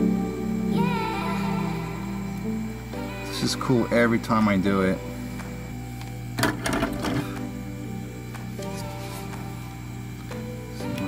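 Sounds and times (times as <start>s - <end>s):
background music sustained tones: 0.0s - 11.0s
low steady hum: 0.0s - 11.0s.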